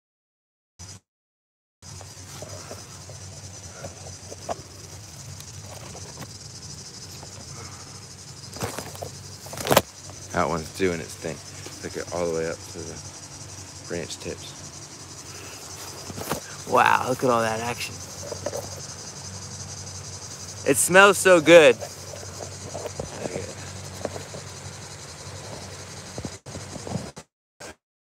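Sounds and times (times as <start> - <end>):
insects chirring: 1.8 - 27.2
low voices: 10.3 - 13.1, 15.2 - 19.0, 20.6 - 24.3.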